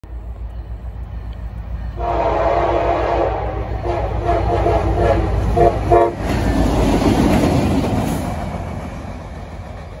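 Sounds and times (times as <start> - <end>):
diesel locomotive engines: 0.0 - 10.0
train wheels on rails: 0.0 - 10.0
train horn: 1.9 - 6.3.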